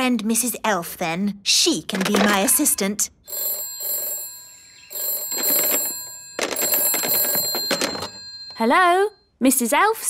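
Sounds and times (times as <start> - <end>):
telephone bell ringing: 3.3 - 9.2.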